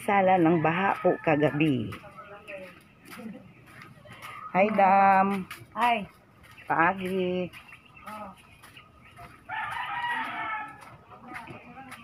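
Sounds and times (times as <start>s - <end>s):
rooster crowing: 9.5s - 11.0s.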